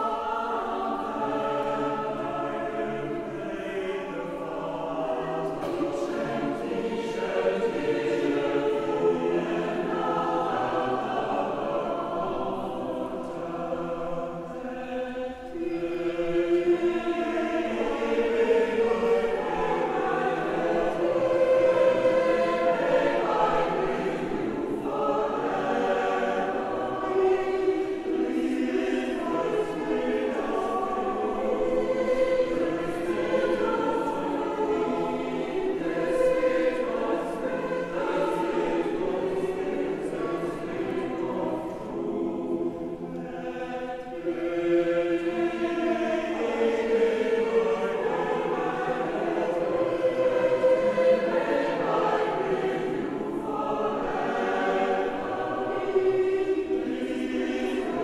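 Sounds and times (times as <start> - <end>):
mixed choir singing a cappella: 0.0 - 58.0.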